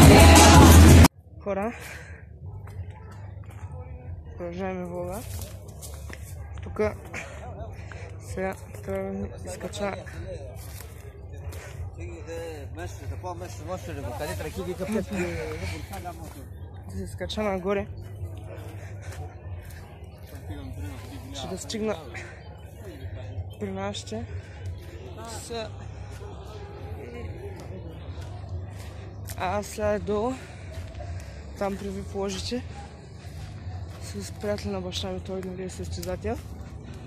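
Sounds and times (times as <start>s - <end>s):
man's voice: 0.0s - 1.9s, 6.7s - 19.3s, 23.4s - 37.0s.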